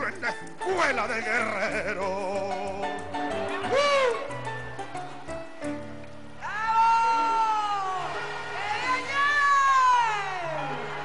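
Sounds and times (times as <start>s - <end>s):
faint backing music: 0.0s - 11.0s.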